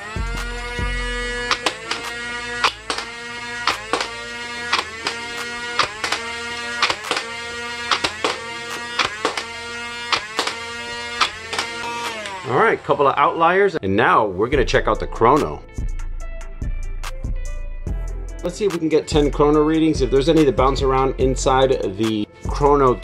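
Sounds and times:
motor whine: 0.0 - 13.8, 18.4 - 23.0.

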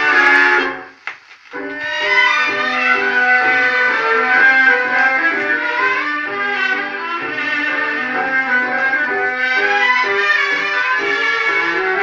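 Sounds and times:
tango orchestra on record: 0.0 - 12.0.

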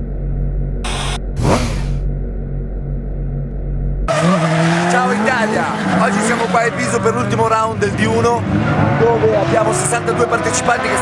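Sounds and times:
low drone: 0.0 - 4.1
whoosh: 0.9 - 2.0
car engine revving hard: 4.1 - 11.0.

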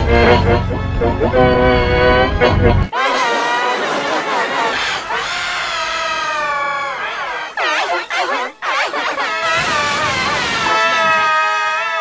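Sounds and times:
pitch-shifted cartoon crying wail: 2.9 - 12.0.

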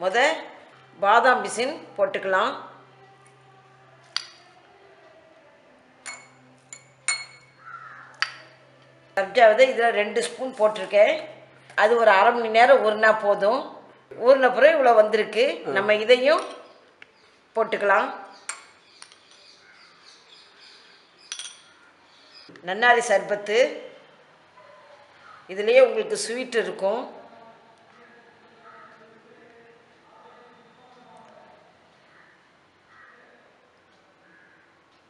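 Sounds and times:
spoon clinking against glass: 4.1 - 4.6, 6.0 - 7.6, 8.2 - 8.6, 18.5 - 19.5, 21.3 - 21.8.

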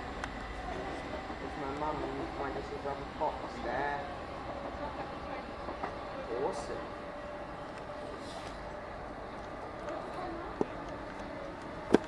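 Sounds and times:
electric train rumble: 0.0 - 12.0
faint voices: 7.9 - 11.9.

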